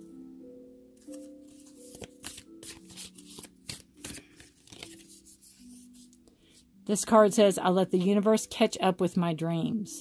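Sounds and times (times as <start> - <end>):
soft background music: 0.0 - 10.0
cards being shuffled: 1.0 - 6.2.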